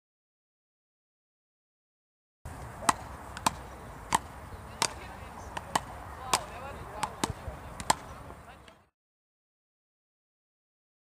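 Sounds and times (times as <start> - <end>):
outdoor background noise: 2.5 - 9.0
ball knocking off paddles: 2.8 - 8.8.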